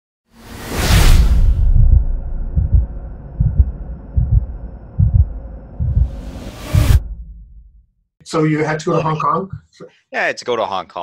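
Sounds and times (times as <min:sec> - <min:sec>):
loud whoosh: 0:00.4 - 0:07.7
low hum: 0:01.0 - 0:07.8
deep heartbeat-like thuds: 0:01.4 - 0:07.8.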